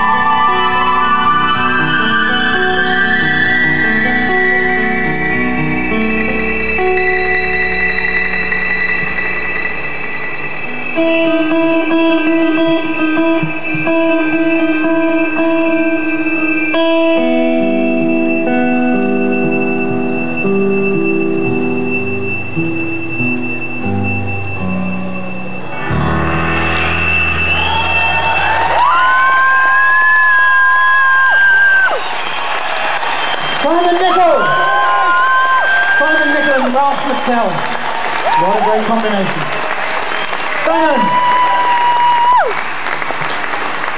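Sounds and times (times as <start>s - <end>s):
acoustic guitar and fiddle: 0.0s - 28.3s
audience applause and cheering: 25.8s - 43.9s
loud whistles: 26.6s - 33.8s.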